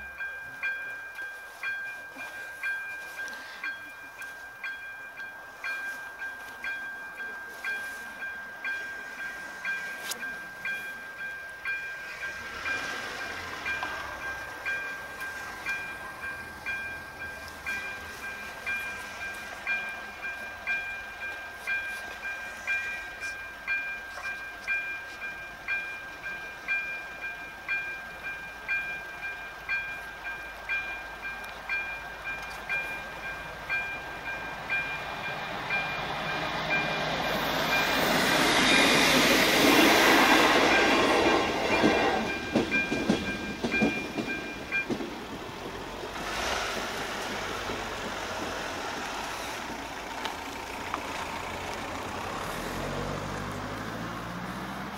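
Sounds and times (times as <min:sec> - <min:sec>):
steady high tone: 0:00.0 - 0:45.0
level crossing warning bell: 0:00.0 - 0:54.9
car passing: 0:11.8 - 0:21.0, 0:33.5 - 0:54.9.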